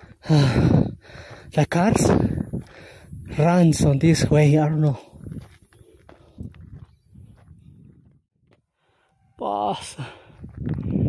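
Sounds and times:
footsteps on gravel: 1.2s - 8.7s.

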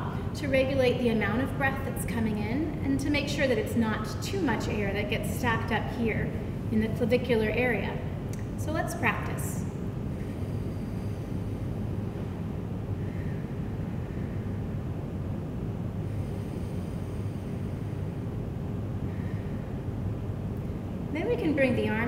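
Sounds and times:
low room rumble: 0.0s - 22.0s
breaths through pursed lips: 10.0s - 14.8s, 16.0s - 18.4s.

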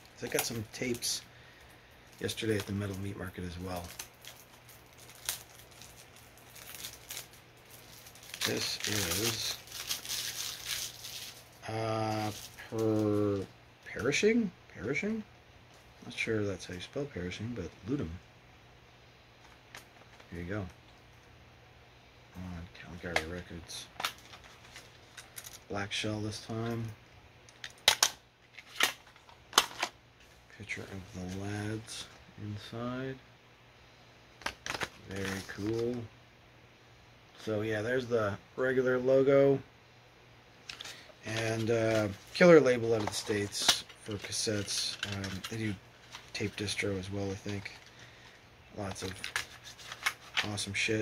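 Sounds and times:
packaging rustling: 2.0s - 13.5s, 23.2s - 25.7s, 27.5s - 30.0s, 34.4s - 36.0s, 40.6s - 50.8s.

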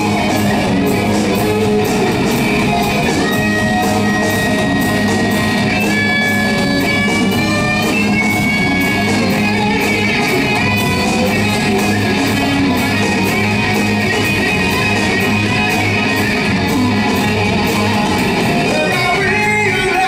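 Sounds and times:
drums: 0.0s - 20.0s
electric guitar lead: 0.0s - 20.0s
live rock band playing: 0.0s - 20.0s.

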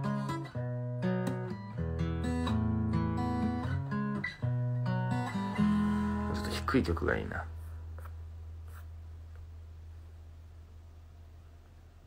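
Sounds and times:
soft scratch: 7.5s - 9.0s.

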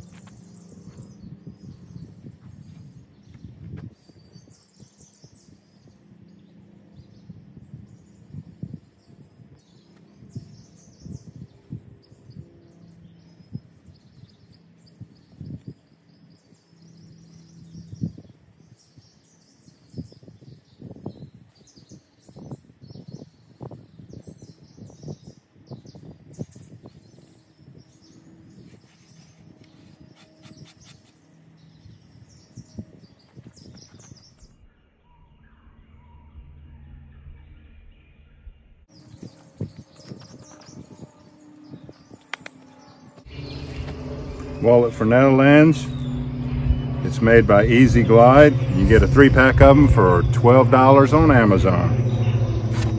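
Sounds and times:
birds chirping faintly: 0.0s - 52.9s.

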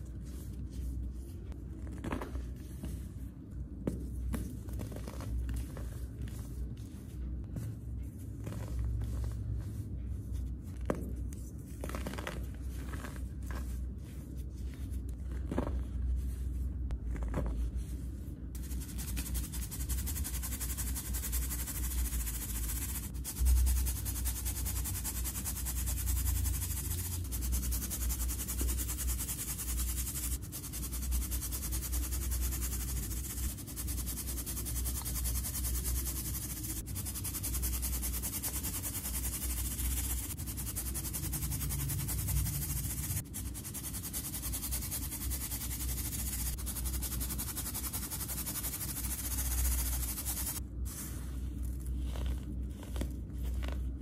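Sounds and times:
powder hissing through sieve: 18.6s - 54.0s.

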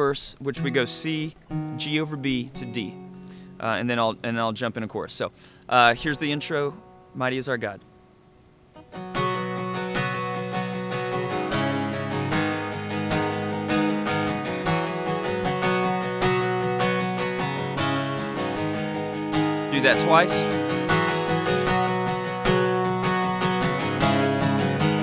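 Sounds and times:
acoustic guitar strumming: 0.4s - 25.0s.

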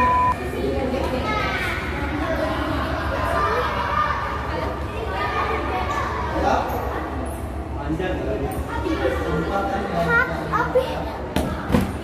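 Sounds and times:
children talking and calling out: 0.3s - 7.7s, 8.6s - 12.0s.

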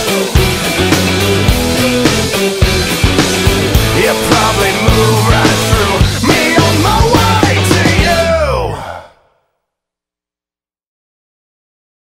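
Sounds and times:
rock song ending: 0.0s - 9.0s.

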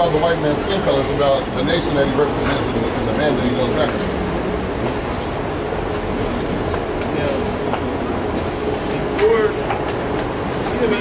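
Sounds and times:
constant hum: 0.0s - 11.0s
passers-by talking: 0.0s - 11.0s
traffic rumble: 0.0s - 11.0s.

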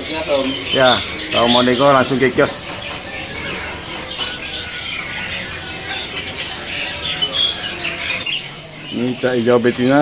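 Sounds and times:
birds chirping: 0.0s - 10.0s
mynas squawking: 0.0s - 10.0s.

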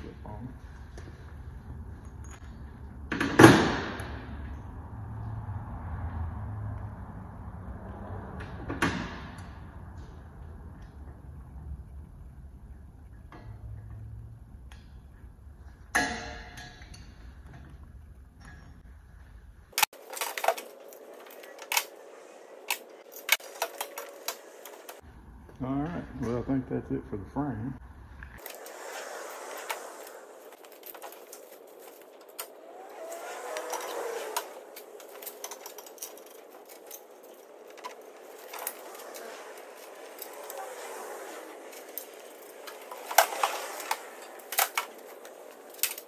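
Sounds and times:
metallic clicks and clanks: 19.7s - 25.0s, 29.6s - 40.8s, 41.4s - 46.0s.

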